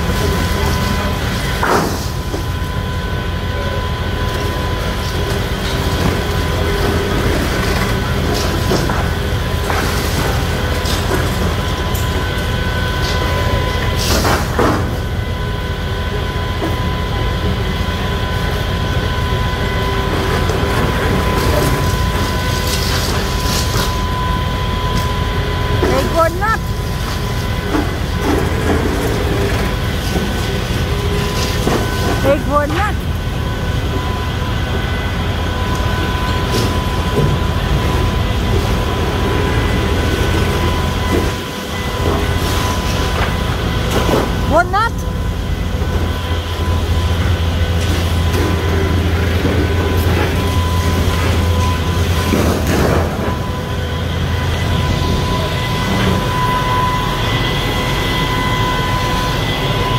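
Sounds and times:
constant high whine: 0.0s - 59.9s
excavator engine rumble: 0.0s - 59.9s.

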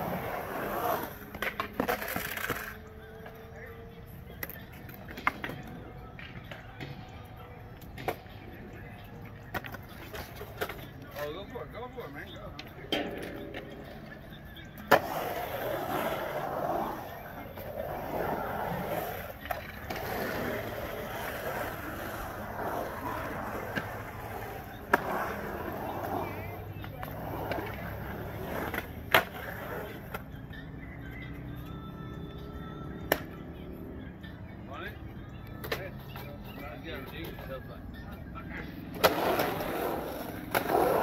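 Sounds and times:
skateboard clacking on concrete: 0.0s - 3.6s, 4.2s - 11.4s, 12.5s - 30.3s, 33.0s - 33.4s, 35.4s - 37.5s, 38.9s - 41.0s
skateboard wheels rolling on concrete: 0.0s - 41.0s.

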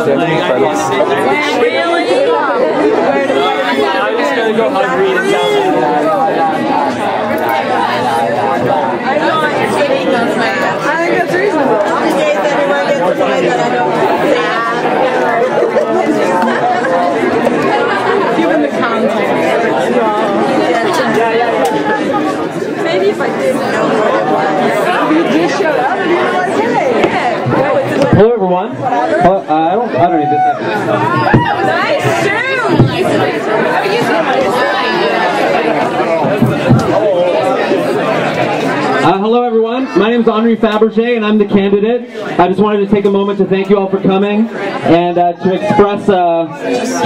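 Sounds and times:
crowd chatter: 0.0s - 47.0s.

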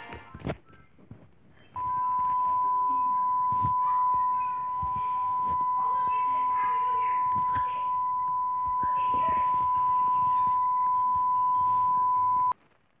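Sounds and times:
long steady test tone beep: 1.8s - 12.6s.

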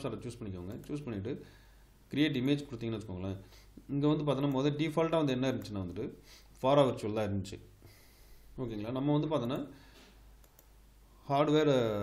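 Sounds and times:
man speaking: 8.6s - 9.8s, 11.3s - 12.0s
faint computer mouse click: 9.4s - 10.7s.

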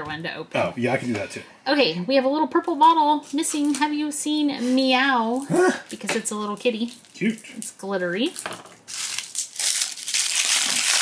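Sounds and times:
tissue paper crinkling: 8.9s - 11.0s.

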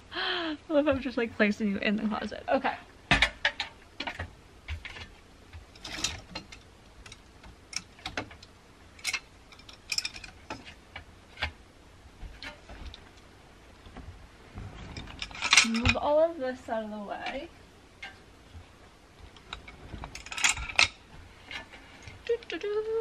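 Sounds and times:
clothes hangers clacking: 3.1s - 11.6s, 14.8s - 16.1s, 19.3s - 22.6s.

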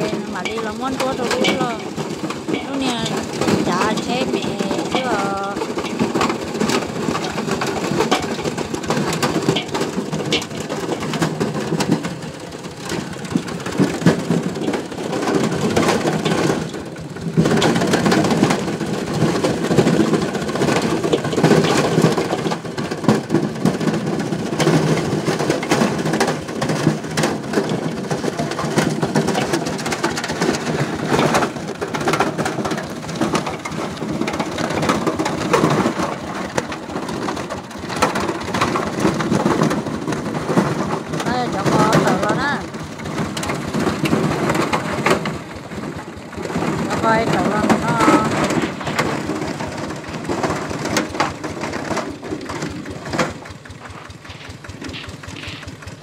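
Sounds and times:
cassava grinding and crackling: 0.0s - 56.0s.

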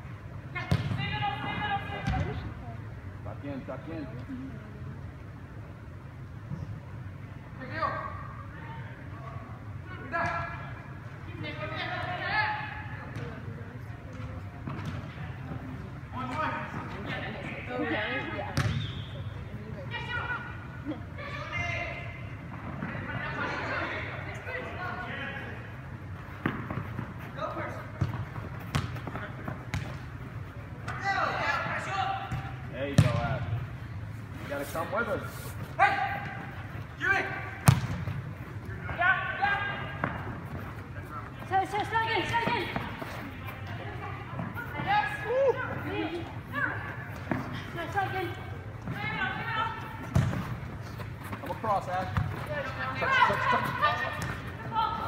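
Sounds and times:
ball kicked thud: 18.6s - 18.8s, 28.0s - 29.0s, 32.3s - 33.4s, 37.6s - 38.2s, 50.1s - 50.6s
players shouting in echoing hall: 30.9s - 33.5s, 35.7s - 40.4s, 43.9s - 50.3s, 51.9s - 55.0s.

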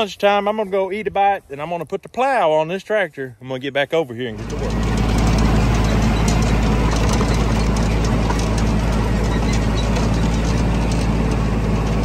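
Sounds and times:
tractor engine running: 4.1s - 12.0s.

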